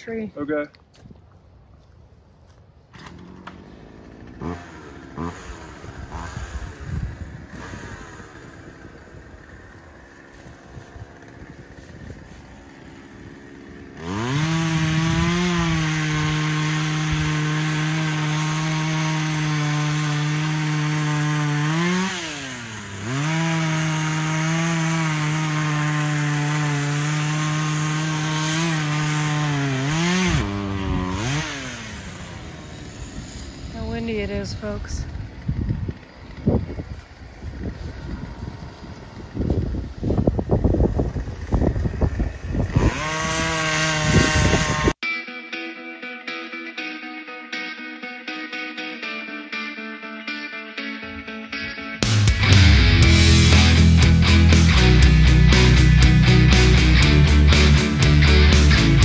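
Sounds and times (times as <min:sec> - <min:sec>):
chainsaw cutting: 0:02.9 - 0:45.0, 0:51.6 - 0:59.0.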